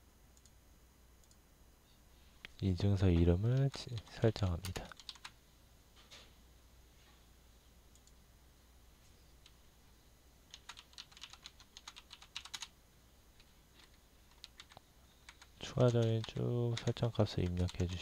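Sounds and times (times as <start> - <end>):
faint low hum: 0.0 - 18.0
keyboard typing: 3.1 - 5.4, 10.5 - 12.7, 13.4 - 18.0.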